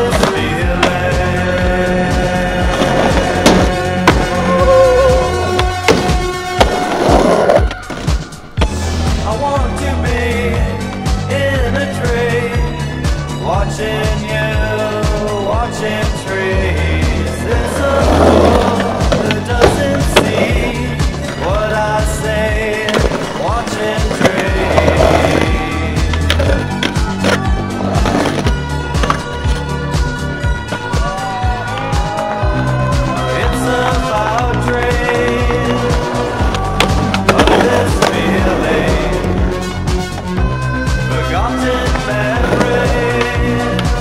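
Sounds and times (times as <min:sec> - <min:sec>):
background music: 0:00.0 - 0:44.0
skateboard wheels rolling on concrete: 0:00.0 - 0:44.0
song with drum beat and synth: 0:00.0 - 0:44.0.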